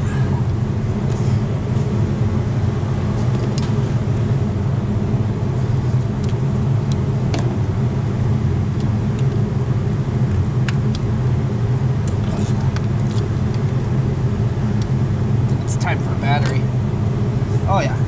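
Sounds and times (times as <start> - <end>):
low machine hum: 0.0 - 18.0.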